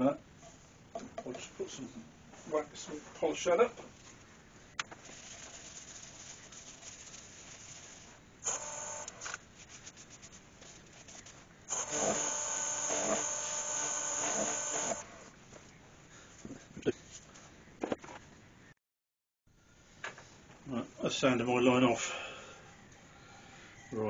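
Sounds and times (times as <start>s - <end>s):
wax rubbing on turning wood: 5.0s - 15.0s
faint whining tone: 22.5s - 24.0s.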